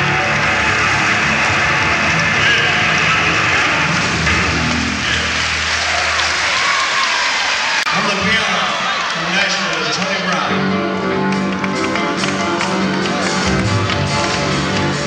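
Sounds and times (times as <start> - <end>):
crowd applause: 0.0 - 15.0.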